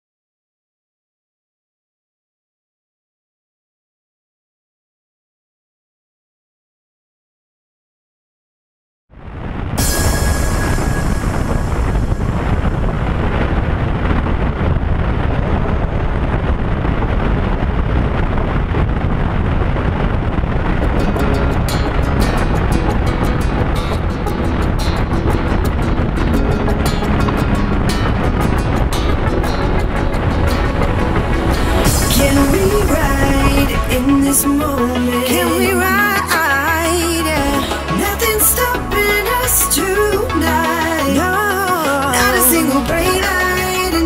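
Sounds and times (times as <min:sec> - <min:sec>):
electronic dance music: 0:29.3 - 0:44.0
steady drum beat: 0:29.4 - 0:34.9.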